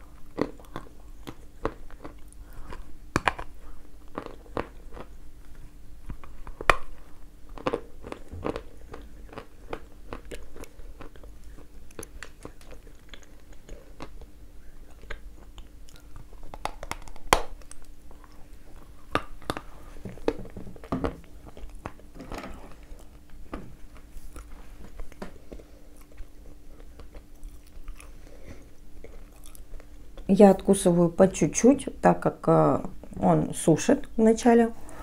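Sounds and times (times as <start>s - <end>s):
crunching and chewing clay: 0.0s - 30.4s.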